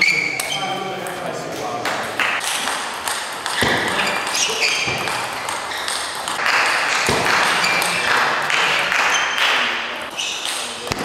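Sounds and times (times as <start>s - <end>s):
table tennis ball hits: 1.9s - 11.0s.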